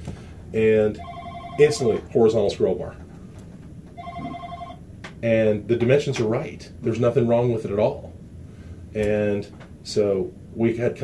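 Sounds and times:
desk telephone ringing: 1.0 - 2.1, 3.9 - 4.8.

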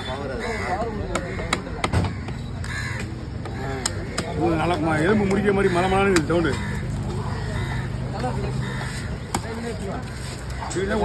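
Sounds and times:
crows cawing: 0.2 - 11.0.

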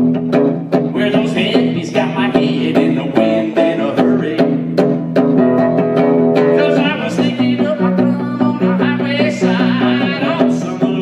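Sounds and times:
strummed guitar chords: 0.0 - 11.0
man singing: 0.8 - 4.8, 6.4 - 11.0.

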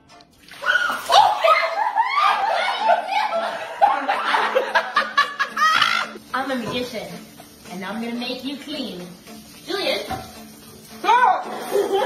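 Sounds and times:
loud continuous laughter: 1.2 - 6.2.

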